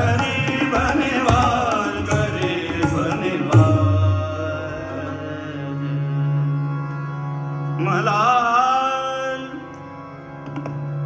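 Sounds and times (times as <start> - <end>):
harmonium holding notes: 0.0 - 11.0.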